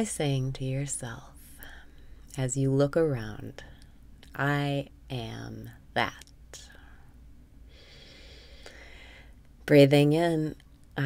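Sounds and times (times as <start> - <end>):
woman inhaling softly: 7.7 - 9.4.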